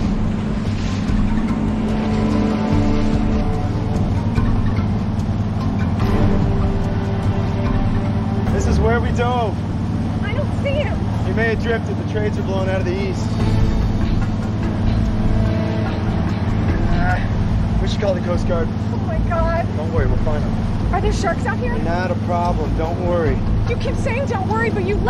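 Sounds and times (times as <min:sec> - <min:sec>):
boat engine droning: 0:00.0 - 0:25.0.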